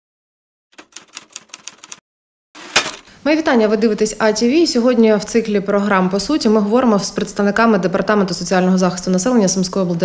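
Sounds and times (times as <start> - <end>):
typewriter keystrokes: 0.8 - 2.0.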